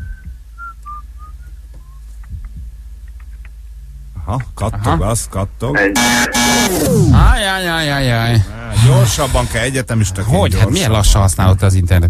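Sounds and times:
person whistling: 0.0s - 2.1s
steady low hum: 0.0s - 12.0s.

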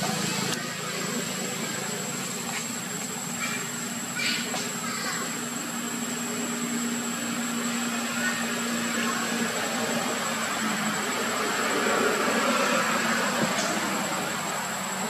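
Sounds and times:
outdoor hiss: 0.0s - 15.0s.

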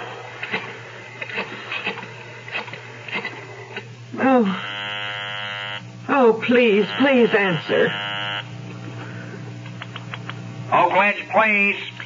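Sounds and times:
buzzing telephone ring tone: 4.4s - 5.9s, 6.5s - 8.6s.

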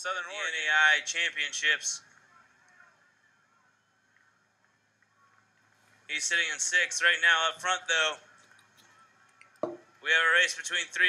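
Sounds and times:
faint low hum: 0.0s - 10.4s.

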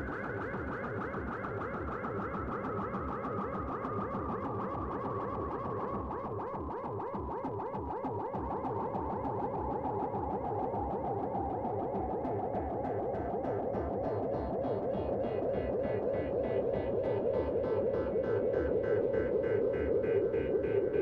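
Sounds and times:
pulsing synthesizer sequence: 0.0s - 21.0s.

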